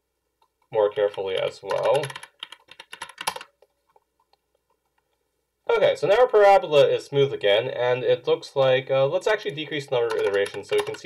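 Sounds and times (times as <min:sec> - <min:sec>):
typing on computer keyboard: 0:01.0 - 0:05.0, 0:09.9 - 0:11.0.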